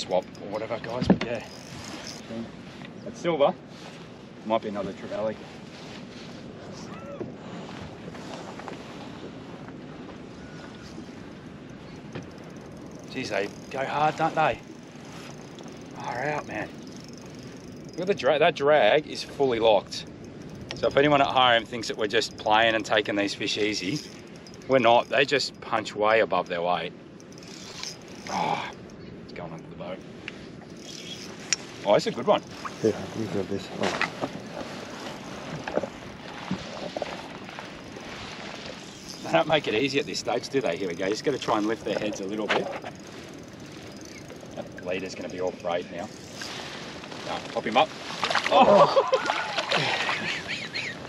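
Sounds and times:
fishing reel whirring: 0.0 - 2.8, 10.3 - 51.0
wind and water: 0.0 - 51.0
faint short chirp: 10.3 - 11.1
water washing against boat hull: 31.3 - 51.0.

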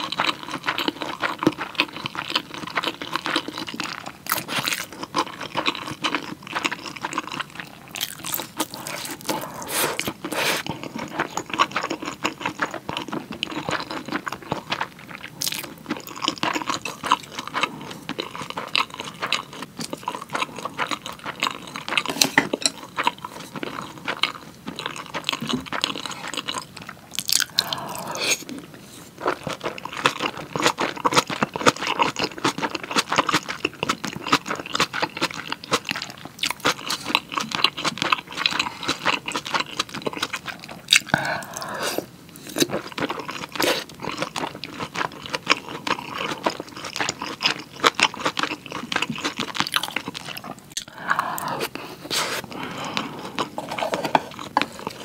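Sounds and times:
close chewing with wet clicks: 0.0 - 28.6, 29.2 - 41.7, 42.5 - 51.0
noisy mouth sounds: 8.0 - 11.0, 27.2 - 28.8, 41.0 - 42.7.

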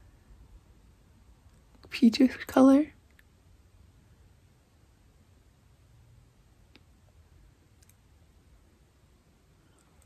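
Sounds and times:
soft click: 7.8 - 8.0.

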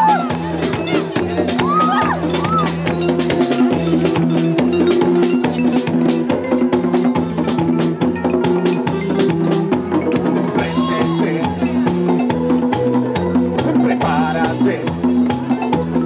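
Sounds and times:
bass line: 0.0 - 16.0
drums and hand percussion: 0.0 - 16.0
live band playing: 0.0 - 16.0.

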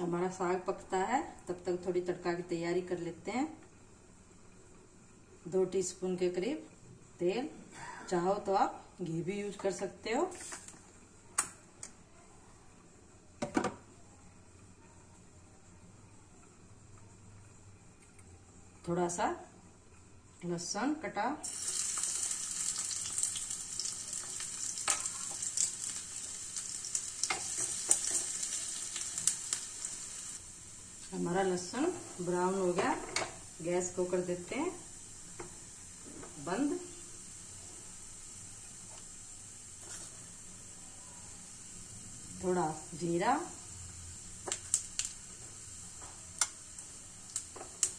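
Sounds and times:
gas burner hissing: 21.4 - 47.9.

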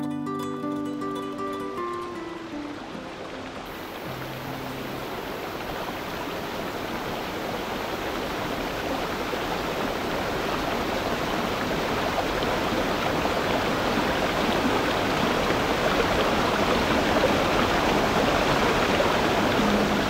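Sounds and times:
stream running over rocks: 0.5 - 20.0.

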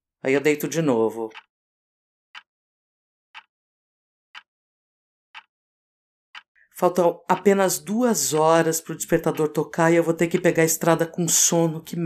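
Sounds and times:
clock ticking: 0.3 - 1.5, 6.4 - 12.0.

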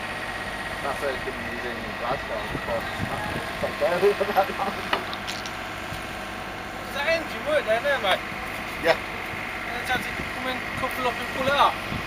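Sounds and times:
railway carriage rumbling on track: 0.0 - 5.4
engine running: 0.0 - 12.0.

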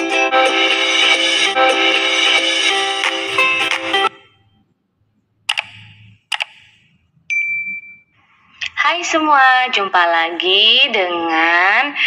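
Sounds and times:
high beep: 7.3 - 8.2.

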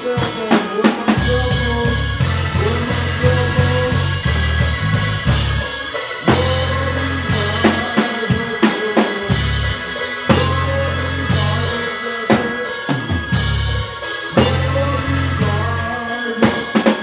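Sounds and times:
drum kit: 0.0 - 17.0
keyboards: 0.0 - 17.0
live band playing: 0.0 - 17.0
held electric bass notes: 1.1 - 8.6, 9.3 - 16.9.

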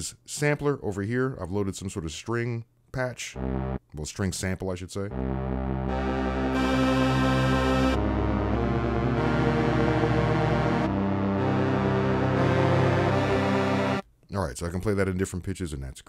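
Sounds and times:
sustained string notes: 3.4 - 3.8, 5.1 - 14.0.

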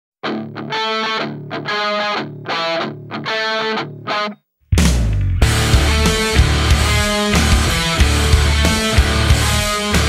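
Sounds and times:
distorted electric guitar riff: 0.2 - 10.0.

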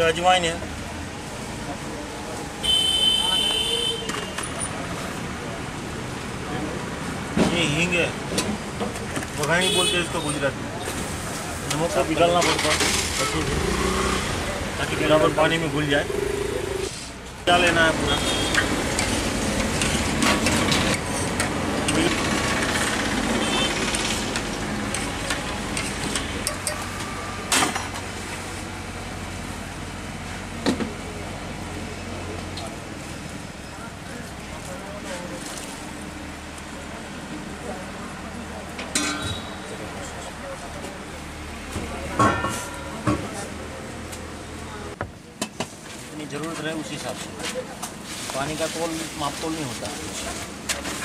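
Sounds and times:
voices: 0.0 - 18.9
street traffic: 0.0 - 51.0.

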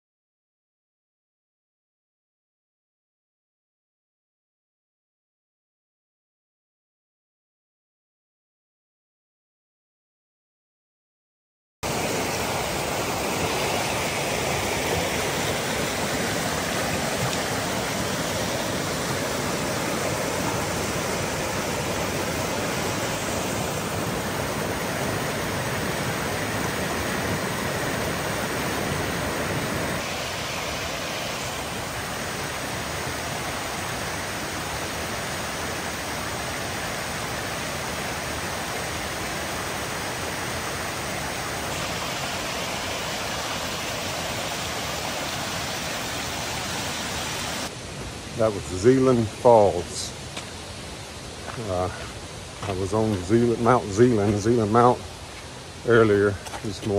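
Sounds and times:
stream cascading over rocks: 11.8 - 56.9.

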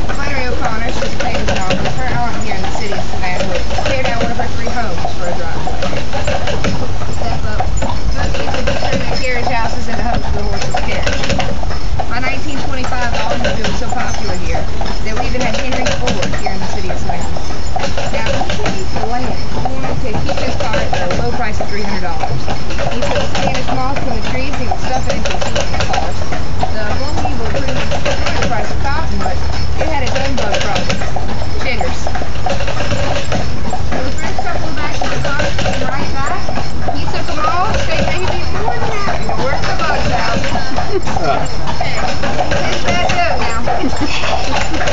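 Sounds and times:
street and vehicle rumble: 0.0 - 44.9
person talking: 0.2 - 6.1, 7.2 - 11.4, 12.1 - 17.3, 18.1 - 26.1, 26.7 - 32.1, 33.9 - 44.9.

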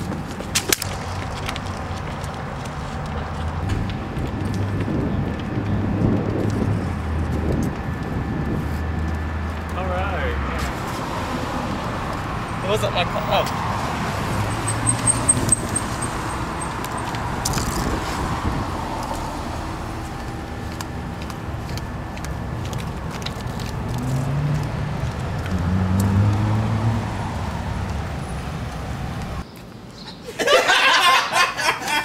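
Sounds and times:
road traffic: 0.0 - 32.0
vehicle engine rising in pitch: 0.8 - 29.4.

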